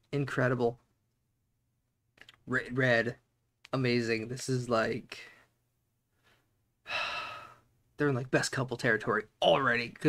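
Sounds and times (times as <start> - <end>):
man breathing: 5.3 - 7.7.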